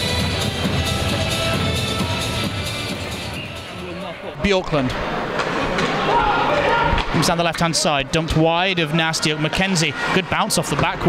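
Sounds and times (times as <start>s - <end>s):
arena crowd din: 0.0s - 11.0s.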